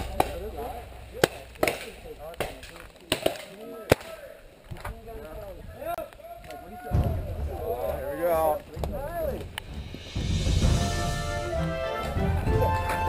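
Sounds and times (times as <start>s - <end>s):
faint crowd voices: 0.0s - 13.0s.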